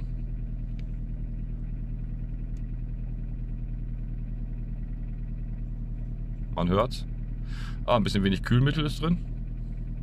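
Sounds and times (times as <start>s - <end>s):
car engine idling with clatter: 0.0s - 10.0s.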